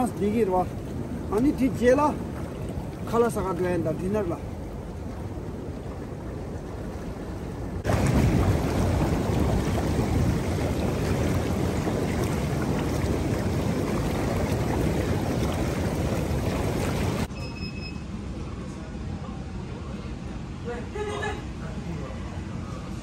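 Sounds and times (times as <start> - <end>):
hot tub jets churning water: 0.0 - 17.4.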